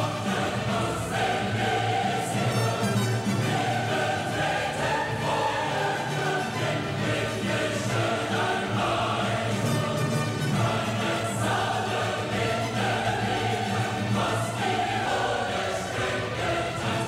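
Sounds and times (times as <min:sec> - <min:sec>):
choir singing held notes: 0:00.0 - 0:17.0
orchestral music: 0:00.0 - 0:17.0.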